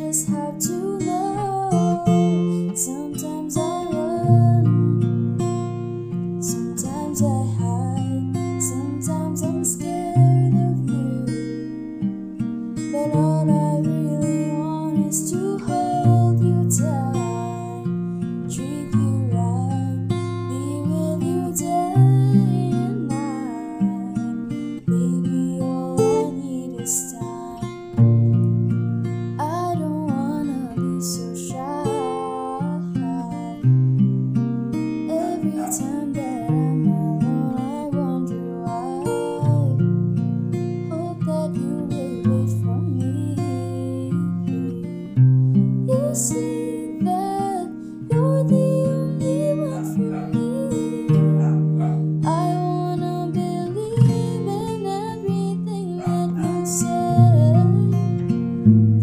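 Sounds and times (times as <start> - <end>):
woman singing pop ballad: 0.0 - 11.9, 12.8 - 28.3, 29.2 - 33.8, 35.0 - 39.9, 40.7 - 45.2, 45.8 - 58.4
strummed acoustic guitar: 0.0 - 59.0.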